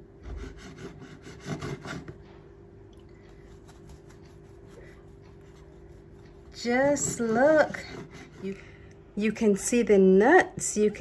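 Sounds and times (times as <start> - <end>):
faint steady hum: 0.0 - 11.0
knife sawing through bread: 0.2 - 2.2, 3.4 - 8.6.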